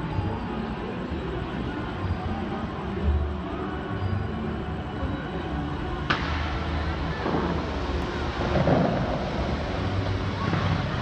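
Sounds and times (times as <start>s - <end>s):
sharp crack: 6.1s - 11.0s
water jets rushing and spraying: 6.1s - 11.0s.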